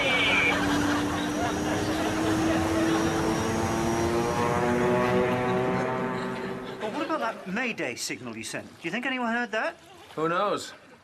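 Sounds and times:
propeller aircraft engines droning: 0.0s - 7.5s.

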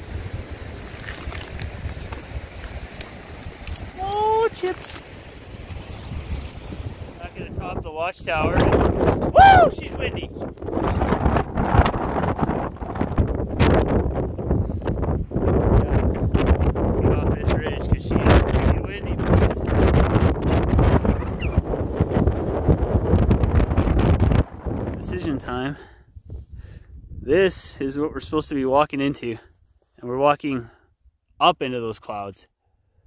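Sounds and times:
wind buffeting microphone: 1.5s - 28.3s
man's voice: 9.4s - 10.3s.

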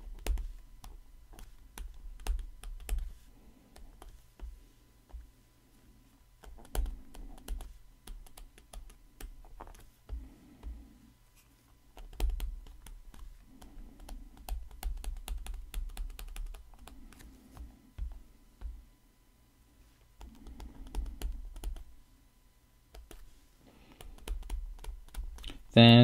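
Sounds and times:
stylus tapping on tablet screen: 0.0s - 5.3s, 6.4s - 10.8s, 11.9s - 18.8s, 20.2s - 21.9s, 22.9s - 23.3s, 23.9s - 25.6s.

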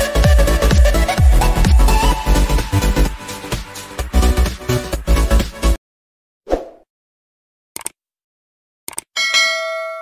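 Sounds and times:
quick clicks: 7.8s - 8.0s, 8.9s - 9.1s
bright bell ding: 9.2s - 10.0s.

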